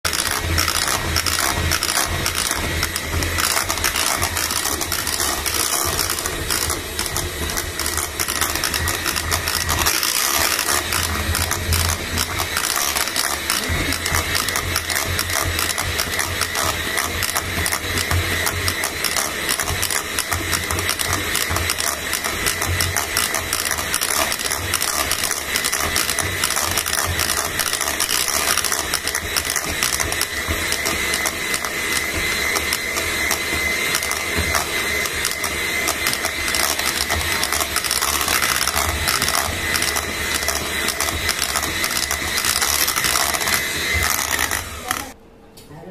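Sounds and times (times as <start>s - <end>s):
beaters clattering against bowl: 0.0s - 45.1s
electric hand mixer running: 0.0s - 45.2s.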